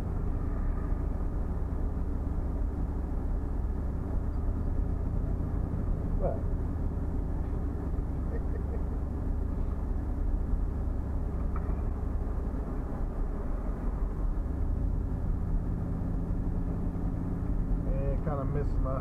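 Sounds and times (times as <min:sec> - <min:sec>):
car engine and tyres rumbling: 0:00.0 - 0:19.0
low engine hum: 0:00.0 - 0:19.0.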